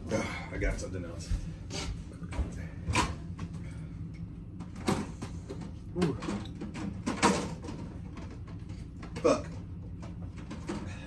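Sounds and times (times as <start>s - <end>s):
kitchen knocks and clatters: 2.3s - 3.5s, 4.6s - 11.0s.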